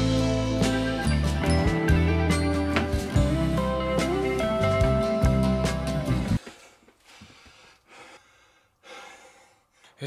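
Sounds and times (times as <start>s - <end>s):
strummed guitar music: 0.0s - 6.4s
man breathing hard: 6.4s - 10.0s.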